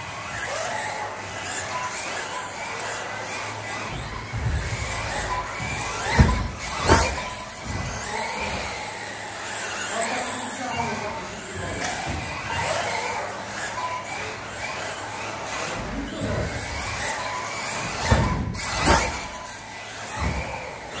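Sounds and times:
electric toy car motors whining: 0.0 - 21.0.

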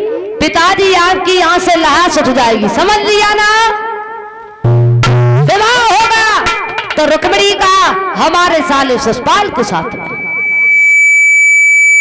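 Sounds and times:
echo of spoken words: 5.5 - 10.2
high-pitched microphone feedback whistle: 8.8 - 12.0.

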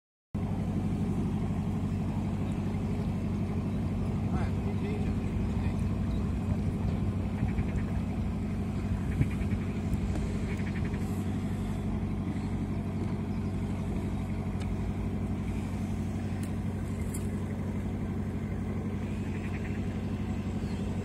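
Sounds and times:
boat engine idling: 0.4 - 21.0.

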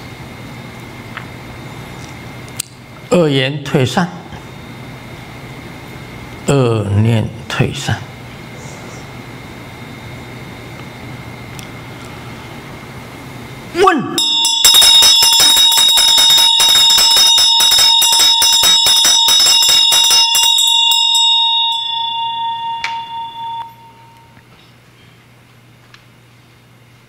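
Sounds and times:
hand bell rung rapidly: 14.2 - 24.3.

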